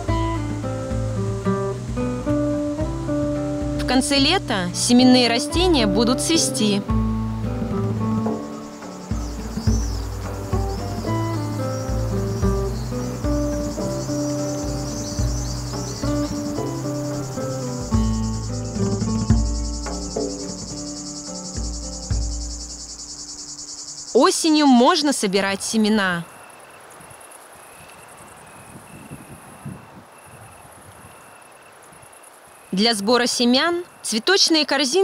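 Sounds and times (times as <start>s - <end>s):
gentle plucked music with bass: 0.0s - 23.1s
crickets chirring: 0.0s - 35.0s.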